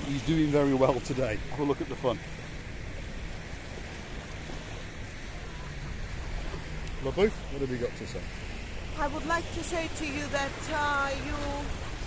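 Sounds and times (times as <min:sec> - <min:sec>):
waves washing on rocky shore: 0:00.0 - 0:12.0
wind rumbling on microphone: 0:00.0 - 0:12.0.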